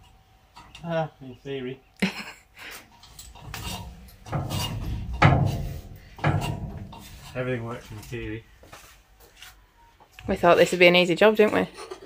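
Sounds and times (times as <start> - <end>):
climbing down metal ladder: 2.9 - 8.4.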